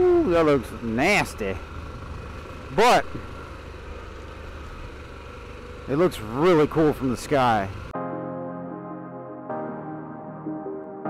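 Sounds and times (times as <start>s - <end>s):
motorcycle engine running: 0.0s - 7.9s
motorcycle riding on gravel: 0.0s - 7.9s.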